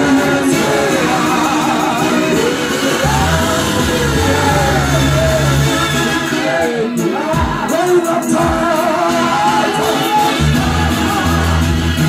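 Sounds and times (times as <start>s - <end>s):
group singing through a pa: 0.0s - 12.0s
keyboard backing: 0.0s - 12.0s
deep bass notes: 2.6s - 6.3s, 10.4s - 12.0s.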